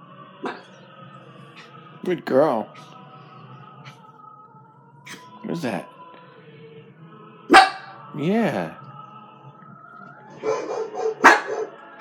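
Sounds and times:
small dog barking: 0:07.5 - 0:07.9, 0:10.4 - 0:11.8.

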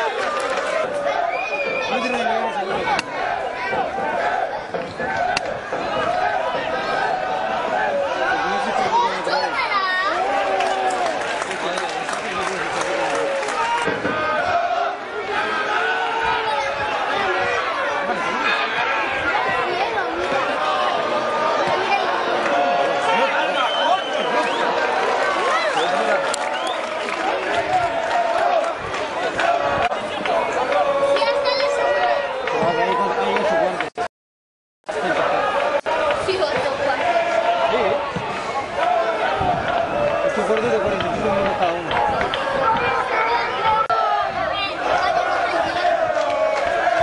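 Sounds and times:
overlapping voices calling out: 0:00.0 - 0:34.1, 0:34.9 - 0:47.0.

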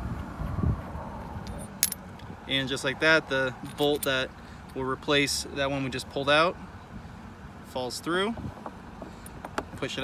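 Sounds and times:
low rumbling handling noise: 0:00.0 - 0:04.8, 0:08.2 - 0:10.0.

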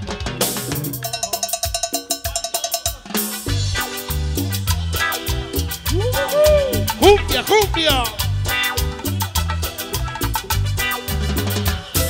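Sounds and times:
latin dance band playing: 0:00.0 - 0:12.0
cowbell ticking: 0:01.0 - 0:10.5.

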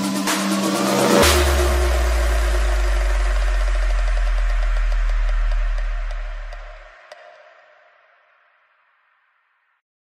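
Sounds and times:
deep bass note: 0:00.0 - 0:07.0
electronic music: 0:00.0 - 0:08.2
crash cymbal hit: 0:00.0 - 0:09.2.

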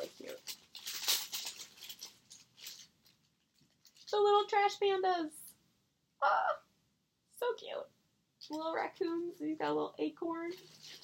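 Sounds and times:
faint rustling of small items: 0:00.0 - 0:05.9, 0:07.3 - 0:11.0.

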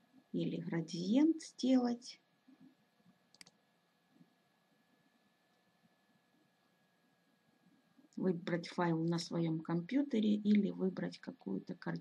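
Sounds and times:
computer mouse click: 0:03.3 - 0:03.6.

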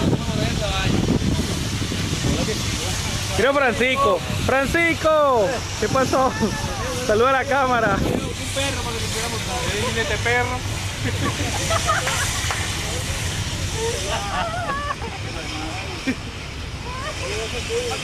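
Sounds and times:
low rumble and hiss: 0:00.0 - 0:18.0
people talking and calling out: 0:00.0 - 0:18.0.

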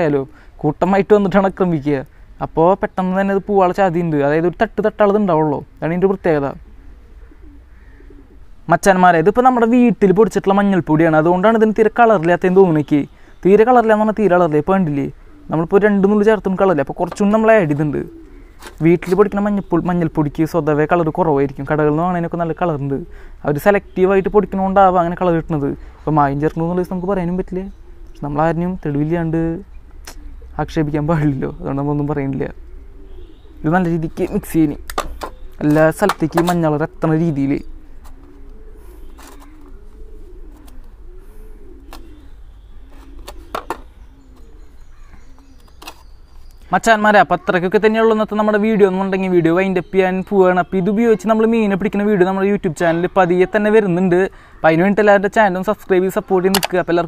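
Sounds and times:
man speaking: 0:00.0 - 0:06.6, 0:08.6 - 0:29.7, 0:30.5 - 0:32.6, 0:33.6 - 0:34.9, 0:35.6 - 0:37.7, 0:46.7 - 0:57.0
bird cooing faintly: 0:00.0 - 0:57.0.

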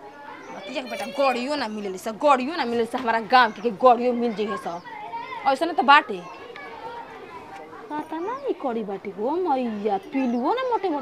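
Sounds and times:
children's voices: 0:00.0 - 0:01.9, 0:03.5 - 0:08.6
voices talking: 0:00.0 - 0:11.0.

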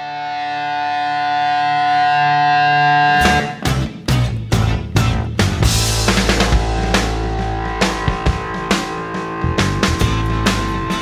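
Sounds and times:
rock band with drums: 0:00.2 - 0:11.0
held guitar chord: 0:05.6 - 0:11.0.

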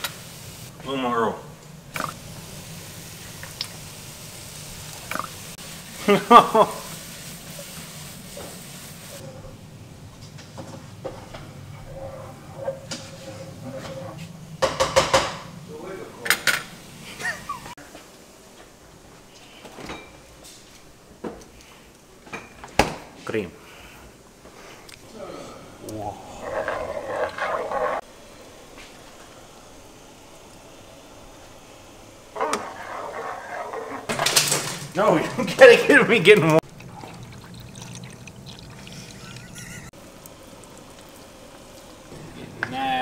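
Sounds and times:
pots and pans clattering: 0:10.4 - 0:15.5, 0:34.1 - 0:35.8.

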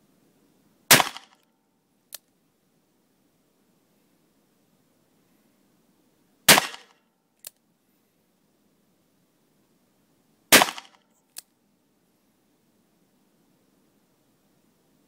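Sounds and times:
faint sharp click: 0:02.1 - 0:02.4, 0:07.4 - 0:07.6.

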